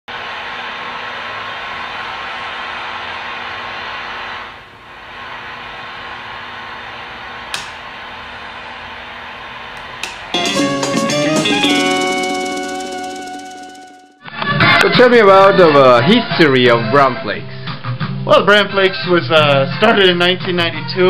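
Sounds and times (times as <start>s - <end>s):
single click: 7.5s - 7.8s.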